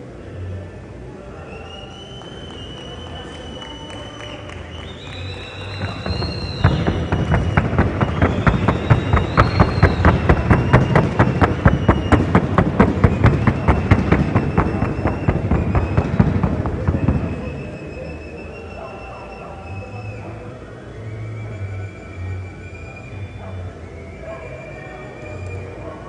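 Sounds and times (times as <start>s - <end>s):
horse hooves trotting: 5.8s - 17.4s.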